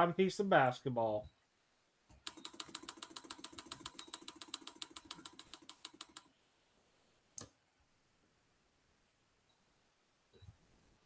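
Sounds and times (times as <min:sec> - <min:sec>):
mouse scroll wheel clicking: 0:02.2 - 0:06.3.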